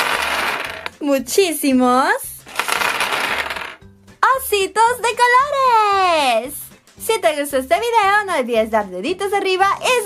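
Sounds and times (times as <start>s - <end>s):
plastic pieces clattering on table: 0.0s - 0.9s, 2.5s - 3.8s.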